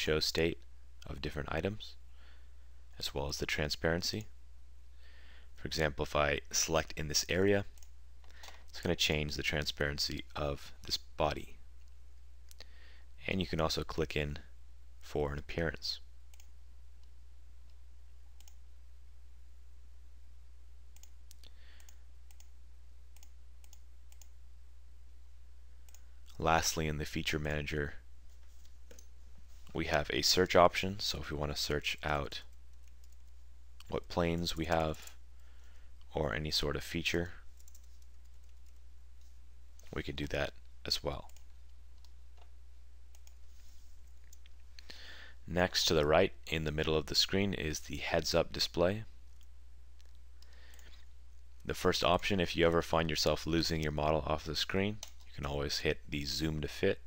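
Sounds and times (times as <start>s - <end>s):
low electrical hum: 0.0s - 57.0s
computer mouse clicking: 23.2s - 24.3s, 37.6s - 39.9s.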